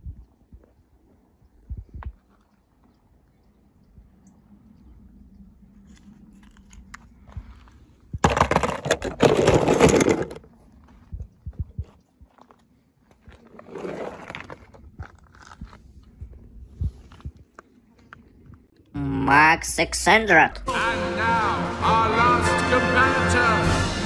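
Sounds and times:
crunching on gravelly ground: 5.8 - 18.8.

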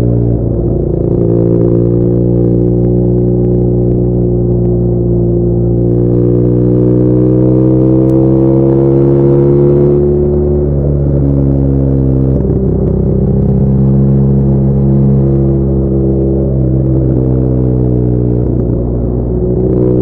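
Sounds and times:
motorcycle engine accelerating: 0.0 - 20.0.

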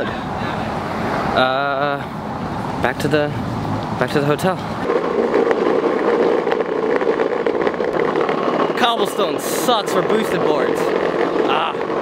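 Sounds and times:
skateboard wheels rolling on brick: 4.0 - 12.0.

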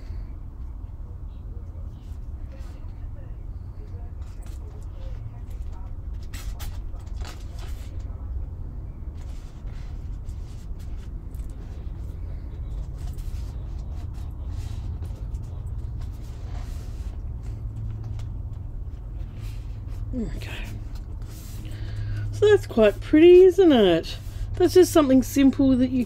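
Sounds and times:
steady low hum: 0.0 - 26.0
paper rustling: 4.2 - 8.2, 9.1 - 22.3.

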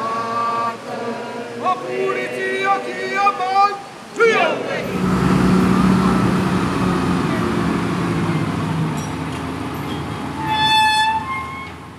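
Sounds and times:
road noise: 0.0 - 11.9
tractor engine running: 4.9 - 10.5.

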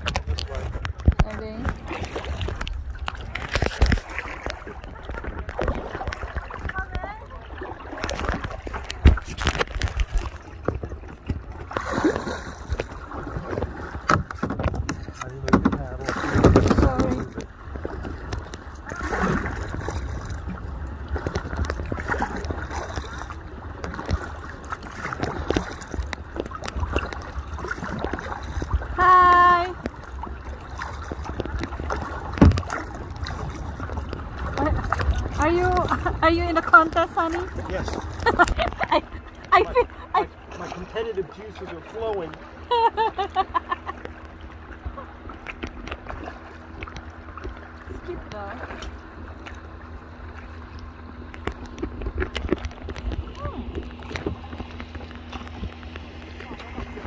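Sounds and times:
paddle splashing water: 0.0 - 57.0
steady low rumble: 0.0 - 57.0.

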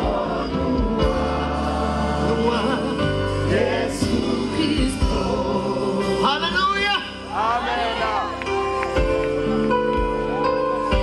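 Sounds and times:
choir singing gospel: 0.0 - 10.0
band accompaniment with bass: 0.0 - 11.0.

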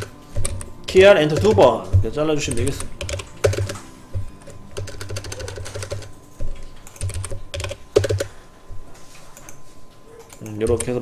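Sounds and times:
keyboard typing: 0.0 - 8.4, 10.2 - 11.0.

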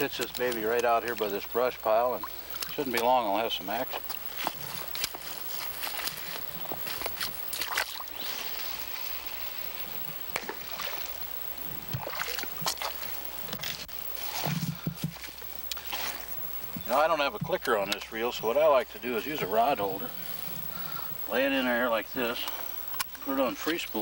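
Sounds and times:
river water sloshing around legs: 0.0 - 15.1.

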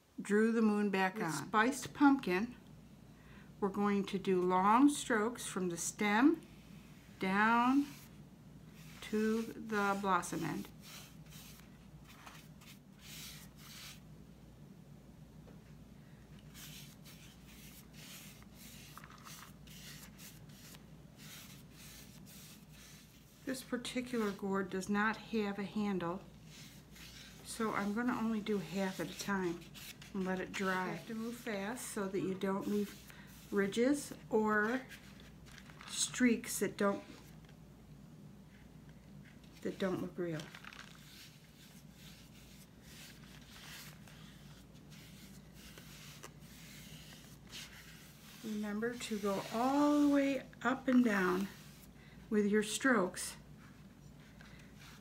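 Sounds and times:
low steady hum: 0.0 - 55.0
paintbrush swishing on gourd: 6.5 - 14.0, 16.5 - 24.5, 26.2 - 35.1, 41.0 - 52.0.

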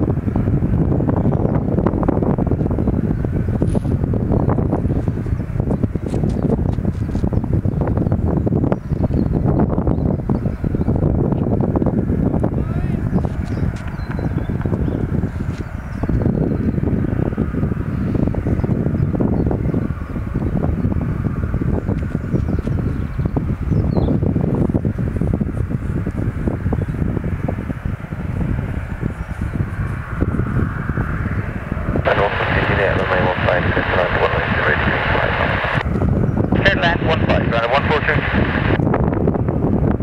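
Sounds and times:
distant jet engines: 0.0 - 40.0
wind buffeting microphone: 0.0 - 40.0.

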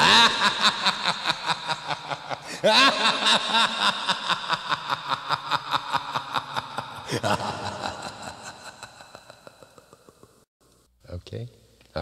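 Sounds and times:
man laughing theatrically: 0.0 - 10.4.

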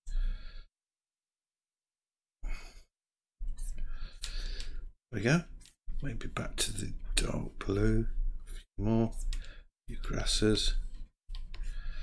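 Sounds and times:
breathing: 0.0 - 0.7, 3.8 - 4.9, 9.3 - 9.7, 11.6 - 12.0.

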